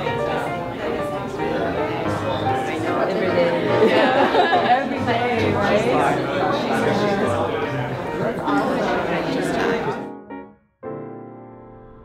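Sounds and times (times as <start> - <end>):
many people chatting: 0.0 - 10.1.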